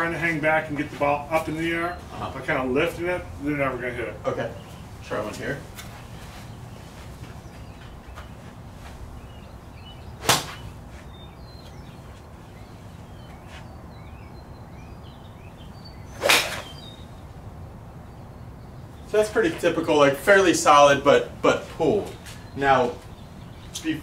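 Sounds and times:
faint birdsong: 0.0 - 24.0
golf club striking ball: 10.2 - 10.7, 16.2 - 17.0
golf club swishing: 10.2 - 11.2, 16.1 - 16.8.

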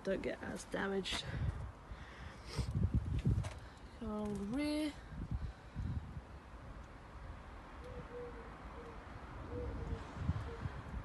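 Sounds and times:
bird cooing: 7.8 - 10.8.

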